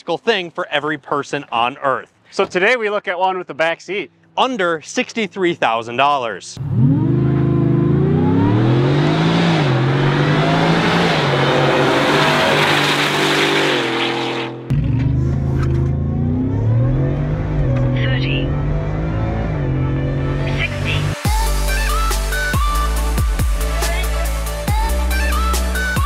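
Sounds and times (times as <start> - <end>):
truck engine accelerating hard: 6.6 - 24.6
acceleration heard from inside cab: 14.7 - 20.6.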